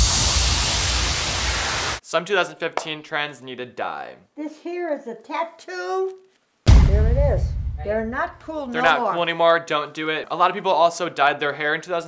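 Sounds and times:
loud white noise hiss: 0.0s - 2.0s.

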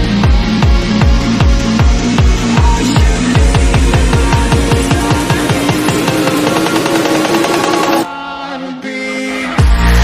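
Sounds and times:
deep pulsing bass beat: 0.0s - 8.0s
held synth line: 0.0s - 8.1s
rapid percussion hits: 0.0s - 8.1s.

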